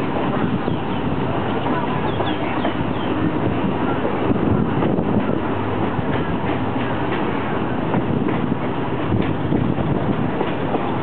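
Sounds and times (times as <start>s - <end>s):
train wheels rumbling on rails: 0.0s - 11.0s.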